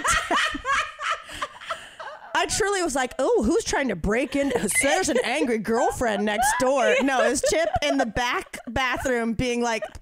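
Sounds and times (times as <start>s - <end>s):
women laughing: 0.0s - 2.6s, 4.1s - 10.0s.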